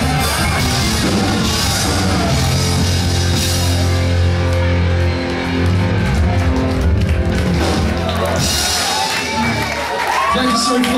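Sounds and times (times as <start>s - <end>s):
heavy metal band playing: 0.0s - 10.9s.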